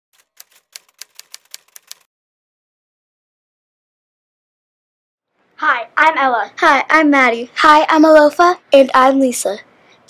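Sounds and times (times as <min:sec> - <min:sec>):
typewriter keys clacking: 0:00.2 - 0:02.1.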